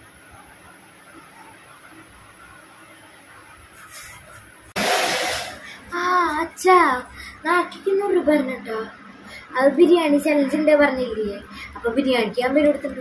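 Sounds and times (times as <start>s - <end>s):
sudden loud burst of noise: 4.8s - 5.9s
child speaking: 5.9s - 13.0s.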